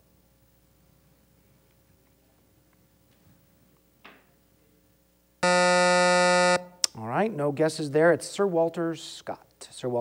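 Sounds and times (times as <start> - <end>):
electronic buzzer: 5.4 - 6.8.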